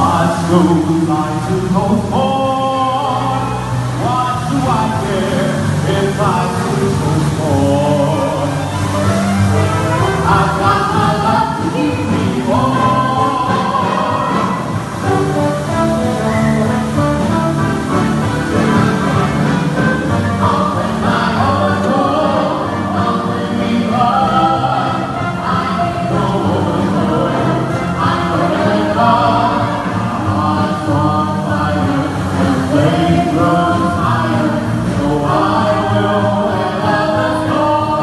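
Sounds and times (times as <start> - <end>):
instrumental accompaniment: 0.0 - 38.0
choir singing: 4.0 - 15.2, 18.6 - 38.0.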